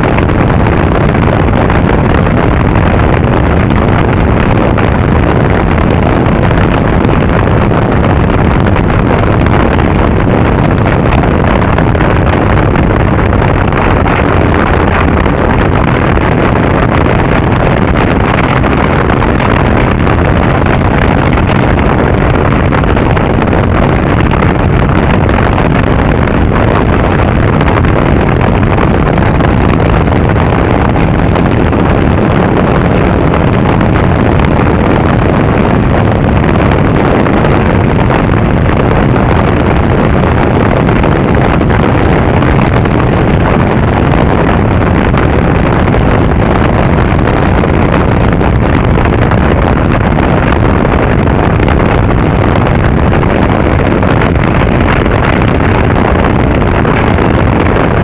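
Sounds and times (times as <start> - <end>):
wind rush on microphone: 0.0 - 58.0.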